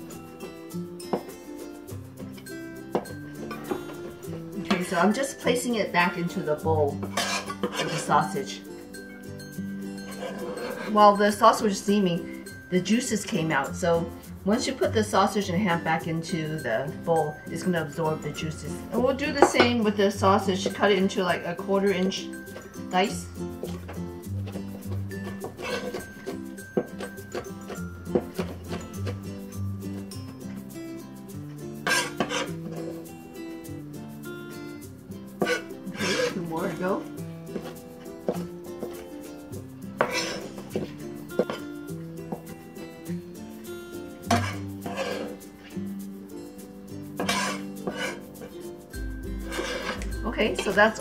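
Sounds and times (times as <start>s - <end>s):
background music: 0.0s - 51.0s.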